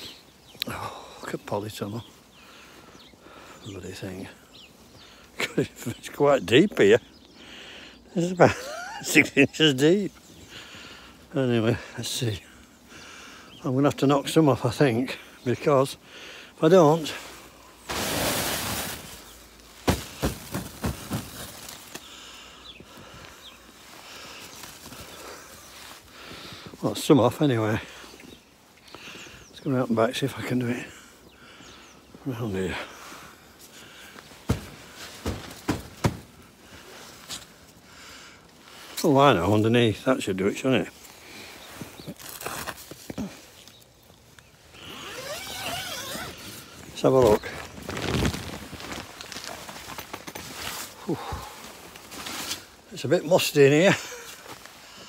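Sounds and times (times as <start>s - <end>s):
snow sliding off plastic cover: 17.8s - 22.0s, 45.2s - 49.9s
plastic netting rustling and scraping: 17.8s - 22.1s, 45.0s - 51.0s, 51.7s - 52.8s
sharp knocks on plastic cover: 34.5s - 36.3s
plastic squeaking: 45.0s - 46.6s.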